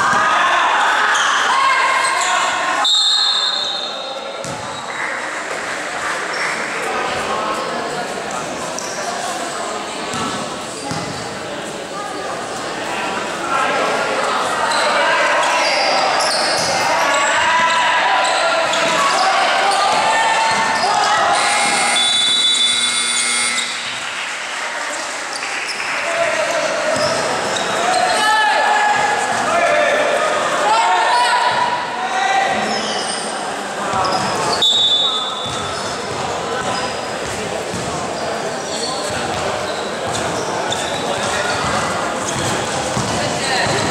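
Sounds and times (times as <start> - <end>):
many voices in echoing gym: 0.0 - 43.9
sneakers squeaking: 1.1 - 5.3, 8.4 - 9.2, 10.0 - 11.6, 14.6 - 24.0, 25.3 - 28.3, 32.5 - 43.9
basketball bouncing on floor: 4.4 - 4.7, 42.4 - 43.9.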